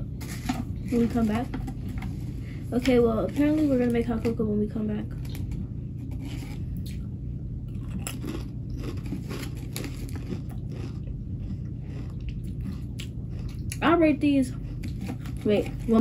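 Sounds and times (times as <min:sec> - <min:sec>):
potato crisps being chewed: 0:07.7 - 0:16.0.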